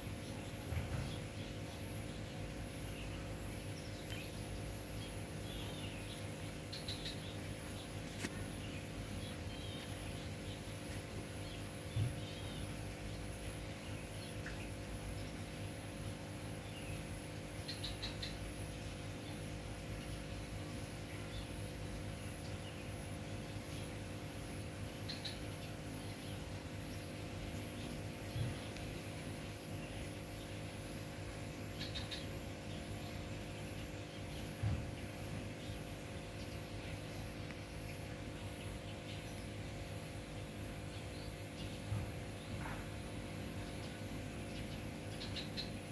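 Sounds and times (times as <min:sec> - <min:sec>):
bird chirps: 0:02.9 - 0:10.7, 0:16.6 - 0:18.6, 0:25.0 - 0:26.4, 0:31.7 - 0:34.8, 0:43.5 - 0:45.9.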